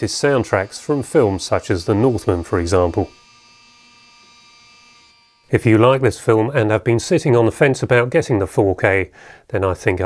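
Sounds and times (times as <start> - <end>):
electric curtain track whine: 0.0 - 4.8.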